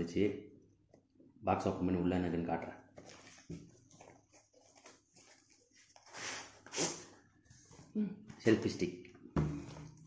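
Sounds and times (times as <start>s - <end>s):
cardboard rustling: 3.0s - 6.6s.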